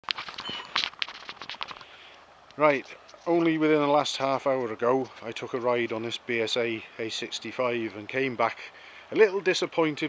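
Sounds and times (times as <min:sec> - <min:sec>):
crackling and rustling: 0:00.0 - 0:06.1.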